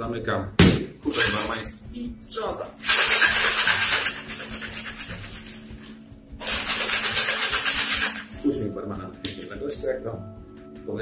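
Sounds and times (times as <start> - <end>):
faint background music: 0.0 - 11.0
ice rattling in cocktail shaker: 1.1 - 1.6, 2.8 - 8.4.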